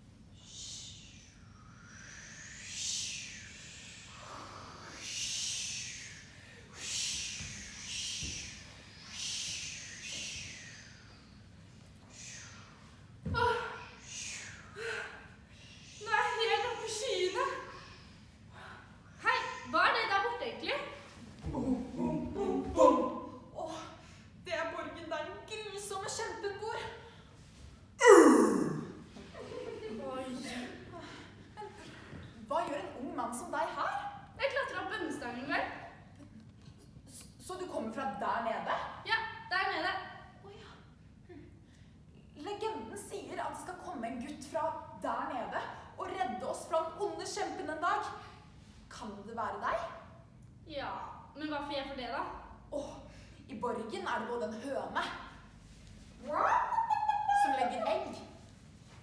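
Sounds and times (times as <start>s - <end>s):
breathy mouth hissing and whooshing: 0.4s - 11.4s, 12.0s - 13.0s
breathy falling vocal sigh: 28.0s - 29.1s.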